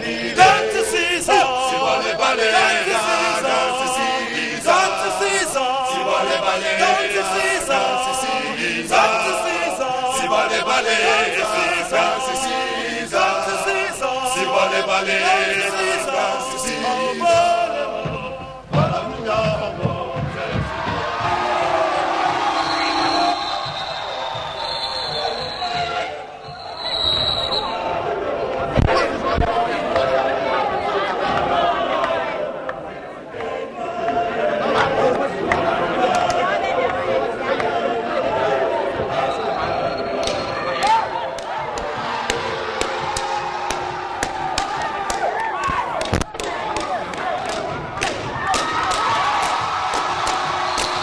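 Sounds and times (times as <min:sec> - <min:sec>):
men chanting in chorus: 0:00.0 - 0:22.4
male vocal group singing: 0:00.0 - 0:23.2, 0:28.8 - 0:40.2.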